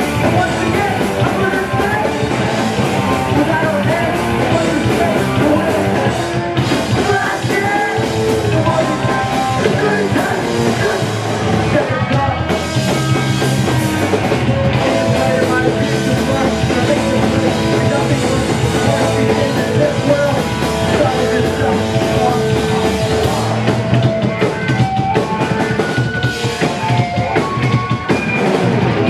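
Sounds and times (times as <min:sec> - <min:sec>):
drum kit: 0:00.0 - 0:29.0
electric guitars: 0:00.0 - 0:29.0
punk band playing live: 0:00.0 - 0:29.0.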